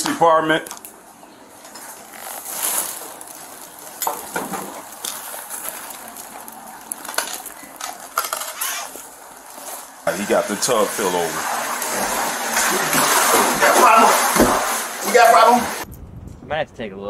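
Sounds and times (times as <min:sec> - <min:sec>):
gear rustling: 0:01.6 - 0:10.0.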